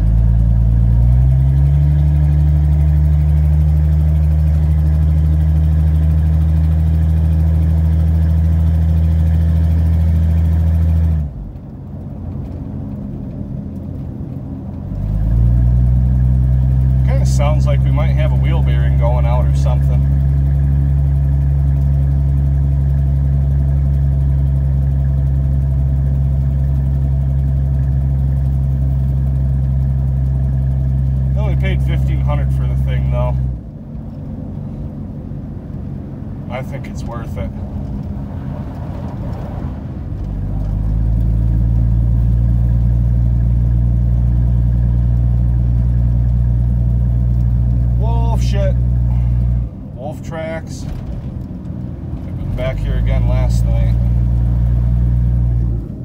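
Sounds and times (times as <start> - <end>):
truck engine drone from inside cab: 0.0 - 56.0.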